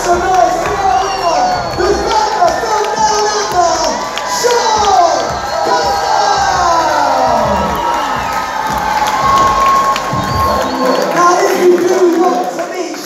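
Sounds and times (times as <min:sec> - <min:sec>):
crowd cheering and shouting: 0:00.0 - 0:13.0.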